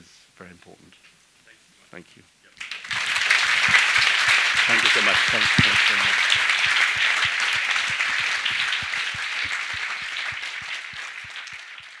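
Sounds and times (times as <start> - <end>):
audience applauding: 2.6 - 12.0.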